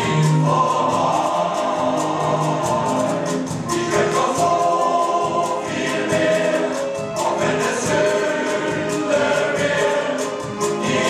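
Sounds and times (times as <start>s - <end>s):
male voice choir singing: 0.0s - 11.0s.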